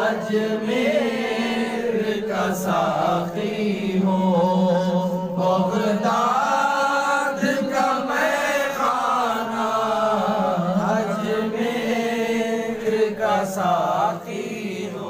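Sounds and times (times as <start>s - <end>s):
voices chanting devotional melody: 0.0s - 15.0s.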